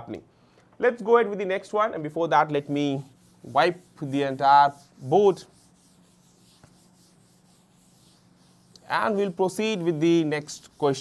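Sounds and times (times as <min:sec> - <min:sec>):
duster rubbing a chalkboard: 0:02.3 - 0:11.0.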